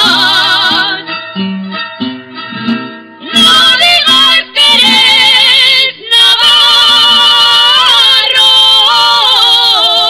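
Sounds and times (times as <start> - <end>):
two women singing in duet: 0.0 - 1.1, 3.2 - 10.0.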